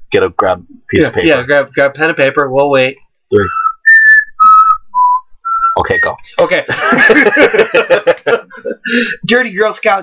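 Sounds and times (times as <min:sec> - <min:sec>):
person whistling a tune: 0:03.4 - 0:06.2.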